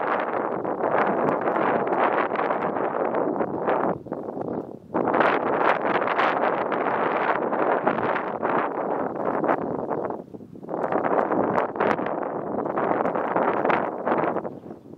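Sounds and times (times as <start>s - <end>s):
wind buffeting microphone: 0.0s - 14.9s.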